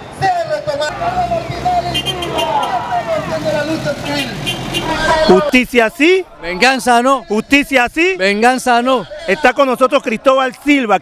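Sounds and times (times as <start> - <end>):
crowd voices: 0.0 - 11.0
traffic driving past: 0.8 - 7.2.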